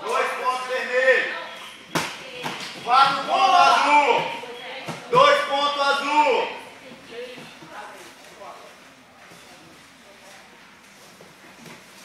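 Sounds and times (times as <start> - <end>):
voices calling out: 0.0 - 7.6.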